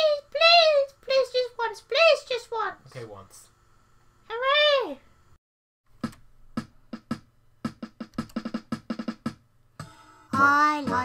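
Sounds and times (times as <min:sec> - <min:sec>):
electronic drum machine beat: 0:06.0 - 0:11.0.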